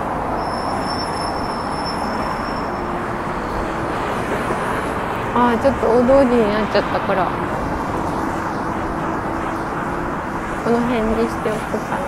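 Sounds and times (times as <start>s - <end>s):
faint high whine: 0.0s - 6.0s
road traffic rumble: 0.0s - 12.0s.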